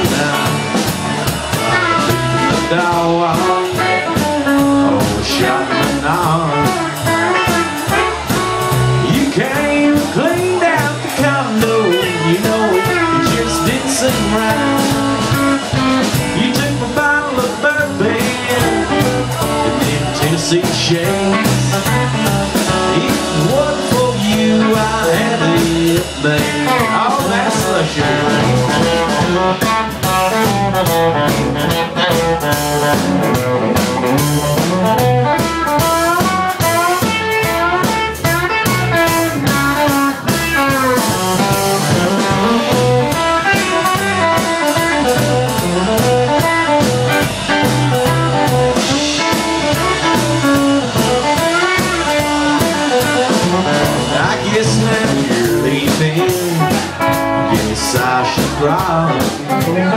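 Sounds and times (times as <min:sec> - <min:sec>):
drums: 0:00.0 - 0:59.9
electric guitar bending notes: 0:00.0 - 0:59.9
upright bass: 0:00.0 - 0:59.9.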